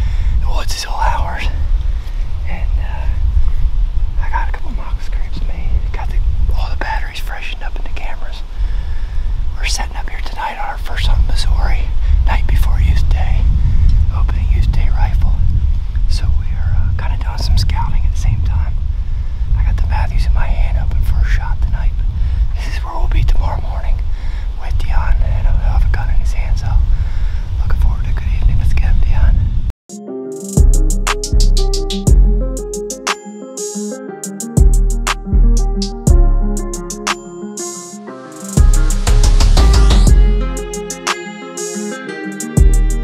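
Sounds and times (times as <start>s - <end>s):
low rumble on microphone: 0.0s - 29.7s
man whispering: 0.4s - 1.7s, 2.4s - 3.3s, 4.2s - 8.5s, 9.6s - 15.4s, 16.1s - 18.8s, 19.6s - 22.0s, 22.6s - 26.9s, 27.6s - 29.4s.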